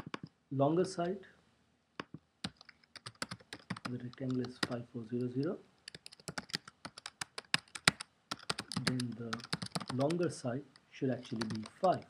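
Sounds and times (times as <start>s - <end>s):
computer keyboard typing: 0.0s - 0.3s, 2.0s - 4.8s, 5.8s - 10.2s, 11.3s - 12.0s.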